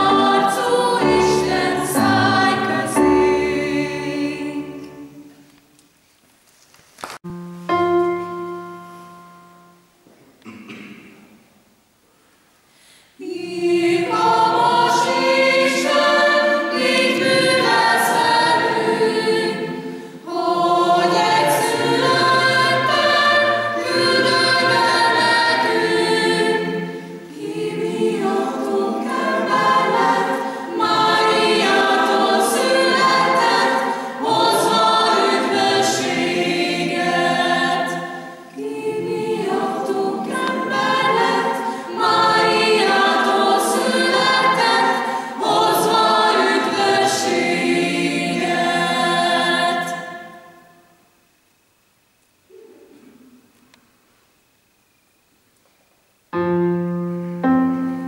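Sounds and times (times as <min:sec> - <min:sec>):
mixed choir singing unaccompanied: 0:00.0 - 0:05.4, 0:13.2 - 0:50.8.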